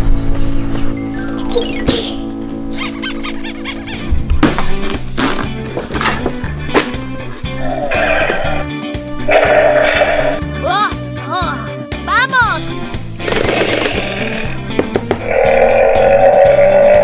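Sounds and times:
background music with steady beat: 0.0 - 17.0
sharp hits: 1.5 - 2.5.

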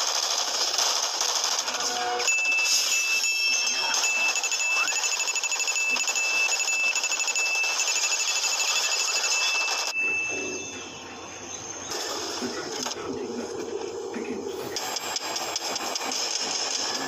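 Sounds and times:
high-pitched ringing tone: 1.9 - 11.8.

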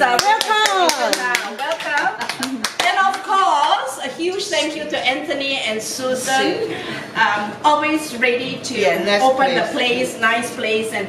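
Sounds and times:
people clapping: 0.0 - 3.5.

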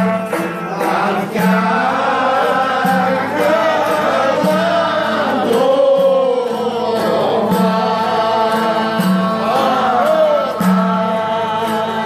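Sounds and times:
folk band playing live: 0.0 - 12.0
man singing: 0.0 - 12.0.

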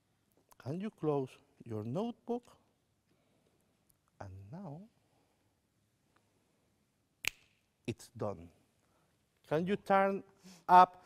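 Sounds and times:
finger snap: 7.2 - 7.7.

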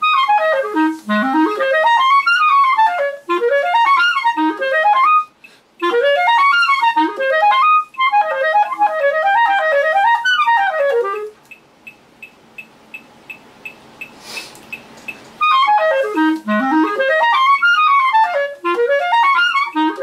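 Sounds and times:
clarinet arpeggio runs: 0.0 - 11.4, 15.4 - 20.0
faint steady ticking: 0.0 - 20.0
breath drawn: 14.1 - 14.6.

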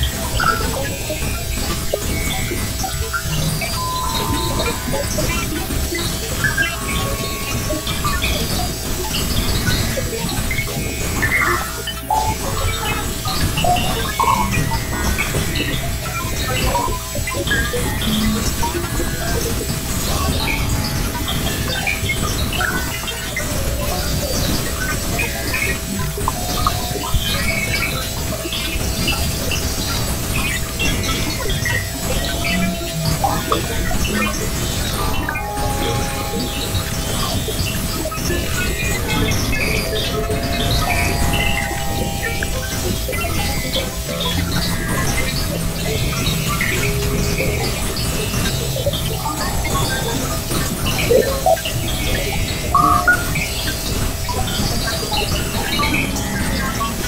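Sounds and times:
crackling chirps and blips: 0.0 - 57.0
held electronic tone: 2.1 - 12.8, 31.6 - 53.8.

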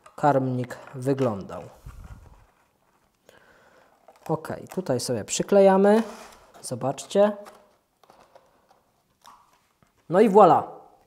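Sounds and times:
plastic rustling: 0.0 - 10.2.

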